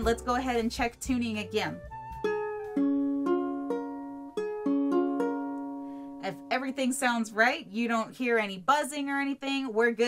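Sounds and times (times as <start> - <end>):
ukulele strings plucked: 0.0 - 7.5.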